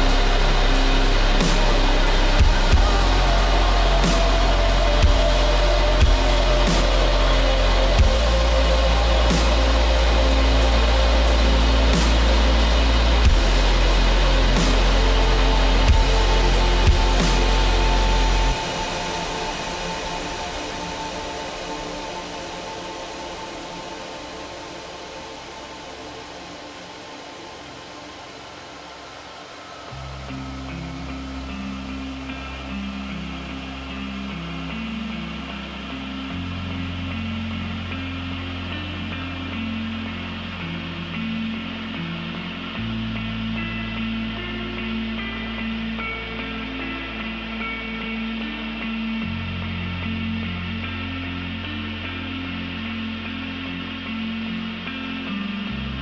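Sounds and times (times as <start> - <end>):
deep held bass note: 0.0 - 21.0
sustained synth pad: 0.0 - 56.0.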